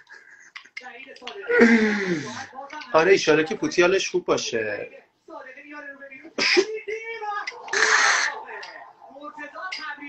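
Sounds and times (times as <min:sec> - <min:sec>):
quiet talking voices: 0:04.7 - 0:10.0.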